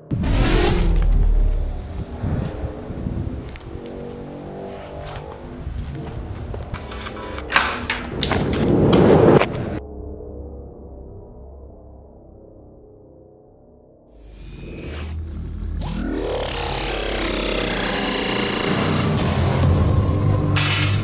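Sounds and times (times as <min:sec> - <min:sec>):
deep boom: 0:00.0 - 0:03.4
low drone: 0:00.0 - 0:21.0
sustained droning chord: 0:01.3 - 0:07.6.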